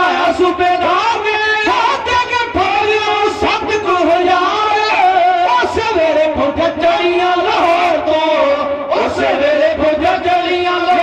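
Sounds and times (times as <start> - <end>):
sarangi: 0.0 - 11.0.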